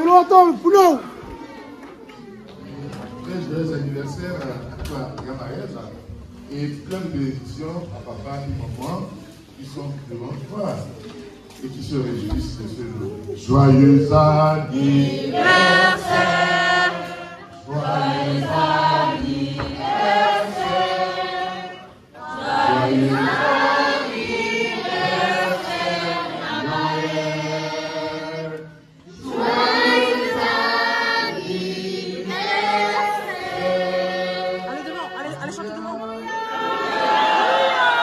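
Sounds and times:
group singing in chorus: 0:13.5 - 0:35.6.

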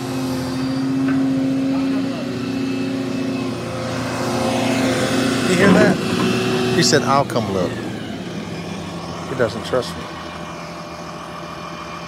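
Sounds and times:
excavator diesel engine droning: 0:00.0 - 0:12.0.

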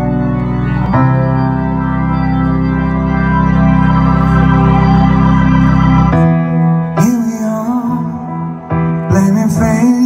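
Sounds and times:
live band music through pa: 0:00.0 - 0:10.0
sustained organ-like keyboard chords: 0:00.0 - 0:10.0.

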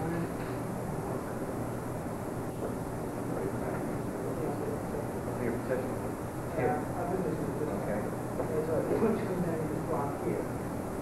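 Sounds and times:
videotape hiss and hum: 0:00.0 - 0:11.0.

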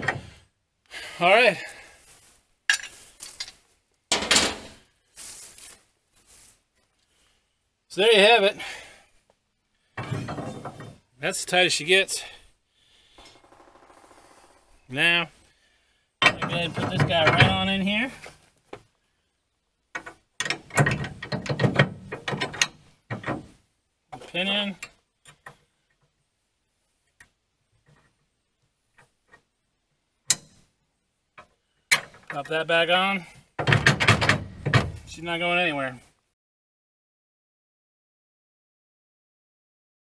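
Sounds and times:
rustling and light clattering: 0:01.7 - 0:07.3
metal scraping and clanking: 0:10.0 - 0:11.0.

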